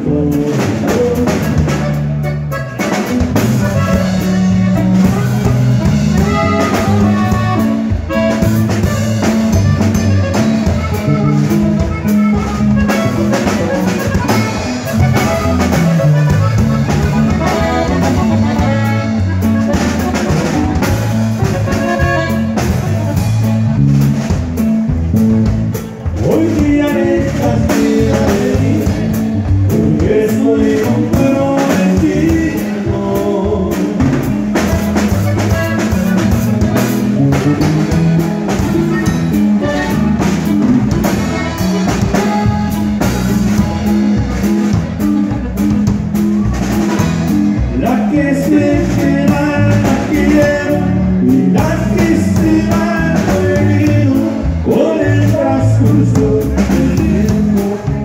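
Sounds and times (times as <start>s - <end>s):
accordion melody: 0.0s - 58.0s
drums: 0.0s - 58.0s
electric bass: 0.0s - 58.0s
guitar: 0.0s - 58.0s.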